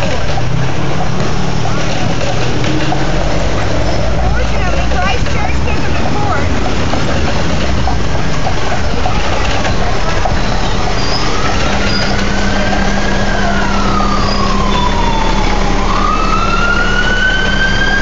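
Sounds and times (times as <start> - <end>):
emergency vehicle siren wailing: 0.0 - 18.0
loud street noise: 0.0 - 18.0.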